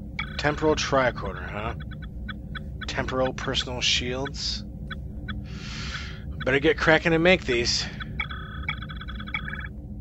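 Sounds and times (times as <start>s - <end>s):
electronic chirping warble: 0.2s - 9.8s.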